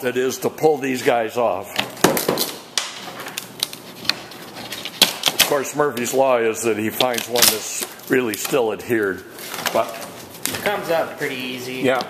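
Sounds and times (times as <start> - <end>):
wood scraping: 3.0 - 6.2.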